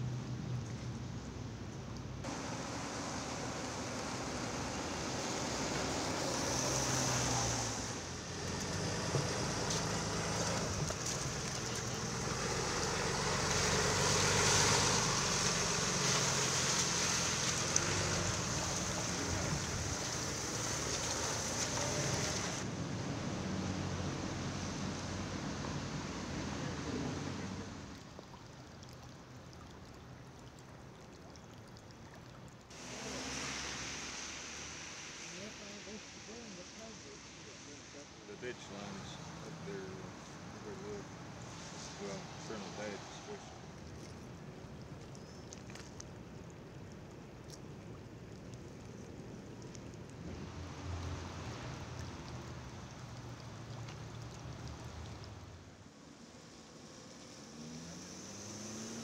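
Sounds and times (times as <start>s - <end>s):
water gushing from a pipe: 2.3s - 22.7s, 24.5s - 37.5s, 38.3s - 55.6s.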